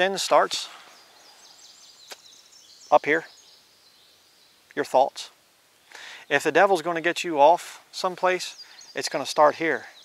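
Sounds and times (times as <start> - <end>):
faint bird chirps: 0.0 - 5.1, 8.4 - 10.0.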